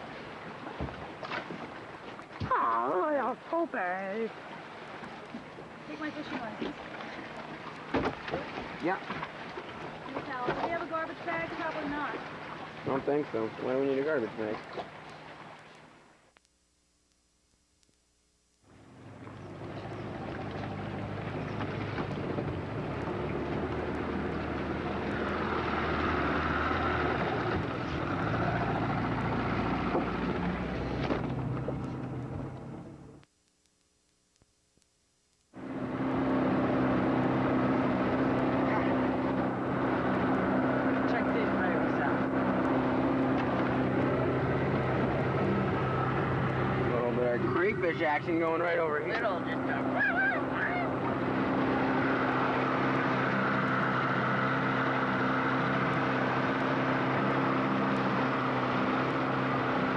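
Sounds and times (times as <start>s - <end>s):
motorboat engine hum: 0.0s - 17.1s, 17.9s - 33.4s, 35.4s - 59.9s.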